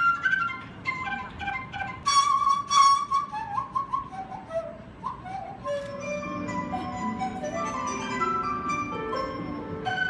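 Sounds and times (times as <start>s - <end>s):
bamboo flute playing solo: 0.0s - 10.0s.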